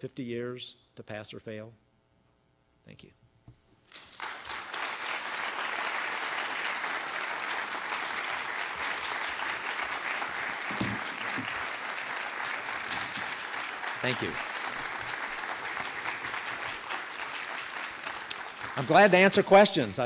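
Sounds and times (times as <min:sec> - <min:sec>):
audience applauding: 0:03.9 - 0:20.0.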